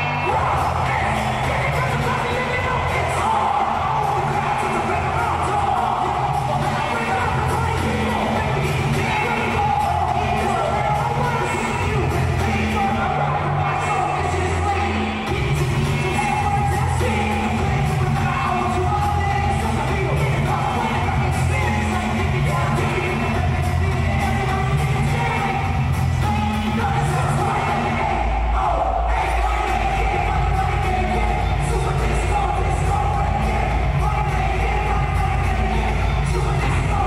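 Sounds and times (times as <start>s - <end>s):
rapping over bass-heavy beat: 0.0s - 37.0s.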